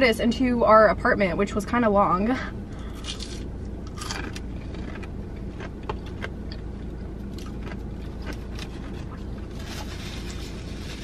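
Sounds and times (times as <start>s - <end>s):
low car hum: 0.0s - 11.0s
chewing with soft crunches: 2.8s - 9.6s.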